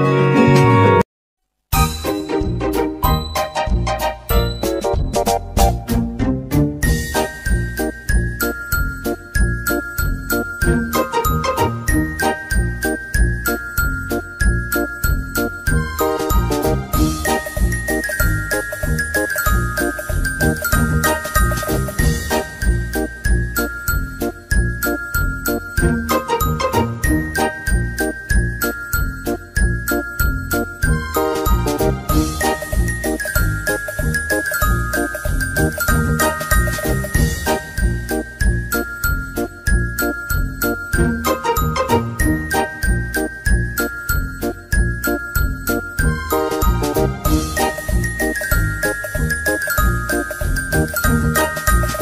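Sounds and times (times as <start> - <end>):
bell-like melody over a beat: 1.8 - 5.8, 6.8 - 52.0.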